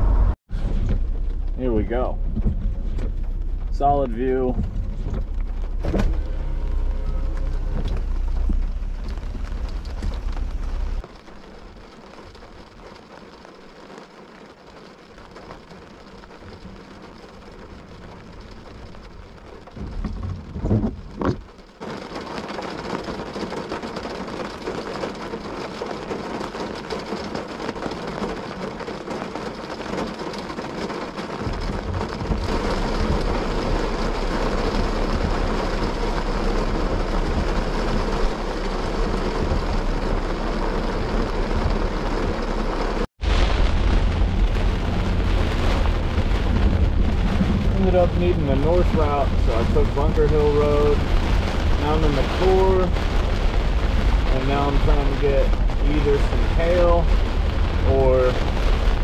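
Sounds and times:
deep low rumble: 0:00.0 - 0:11.1, 0:31.3 - 0:59.0
vehicle driving: 0:00.0 - 0:11.2, 0:30.6 - 0:59.0
rain on a vehicle roof: 0:00.1 - 0:59.0
thunder clap: 0:29.9 - 0:59.0.

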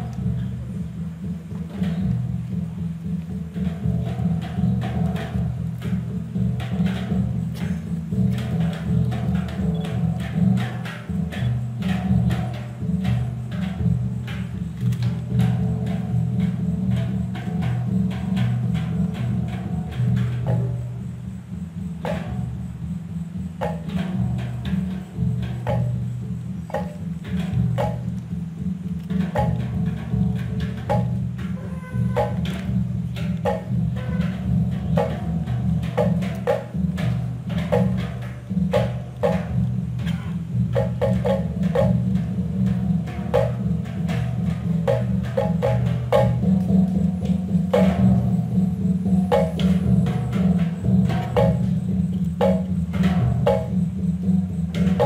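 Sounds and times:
large gongs humming: 0:29.1 - 0:55.0.

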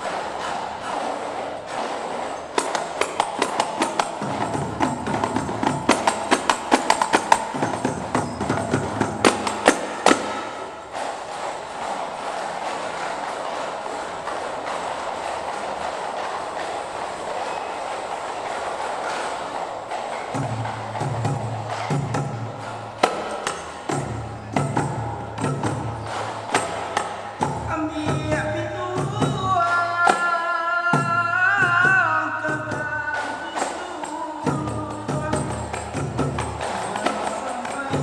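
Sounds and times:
hand claps: 0:00.0 - 0:30.4, 0:31.6 - 0:38.0
frame drums struck: 0:00.0 - 0:38.0.

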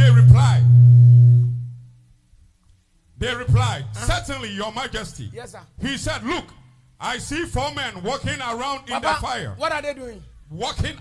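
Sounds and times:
low keyboard note: 0:00.0 - 0:02.1.

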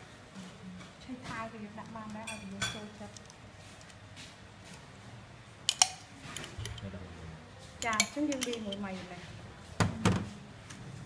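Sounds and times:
metal spoon clinking: 0:05.7 - 0:06.8, 0:07.8 - 0:08.8.

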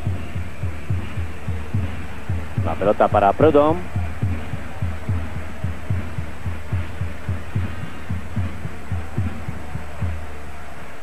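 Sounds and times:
crowd noise: 0:00.0 - 0:11.0
low drum beaten steadily: 0:00.0 - 0:11.0.

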